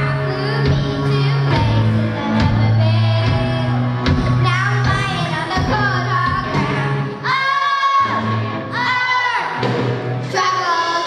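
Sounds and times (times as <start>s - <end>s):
girls singing: 0.0s - 11.0s
rock band playing live: 0.0s - 11.0s.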